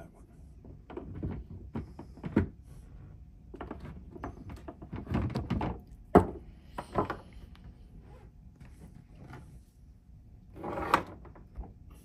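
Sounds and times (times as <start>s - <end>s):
object scraping on workbench: 10.5s - 11.3s.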